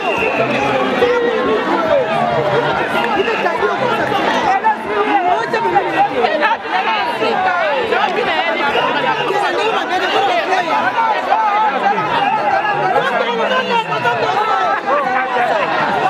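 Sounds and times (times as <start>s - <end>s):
crowd talking and calling out: 0.0s - 16.0s.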